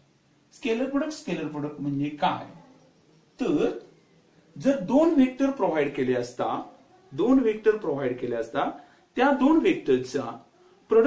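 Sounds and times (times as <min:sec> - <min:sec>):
man speaking: 0:00.5 - 0:02.7, 0:03.4 - 0:03.9, 0:04.6 - 0:11.0.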